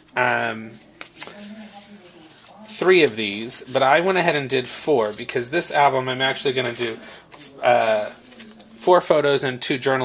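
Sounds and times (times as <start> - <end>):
man speaking: 0.0 - 1.4, 2.7 - 10.0.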